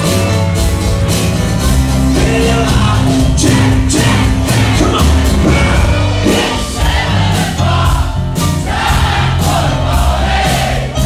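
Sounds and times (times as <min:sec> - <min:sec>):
rock band playing acoustic: 0:00.0 - 0:11.0
male lead vocal: 0:02.1 - 0:08.0
several voices singing together: 0:02.7 - 0:11.0.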